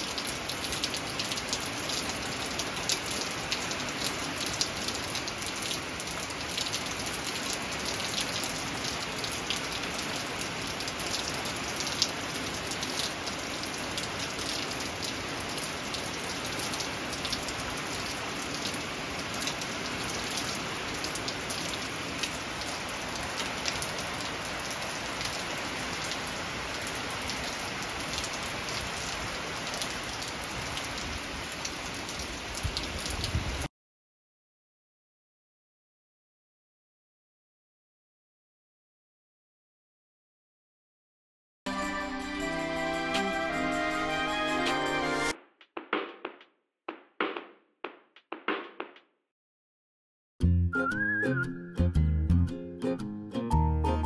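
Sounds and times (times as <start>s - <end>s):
steady rain: 0.0s - 33.7s.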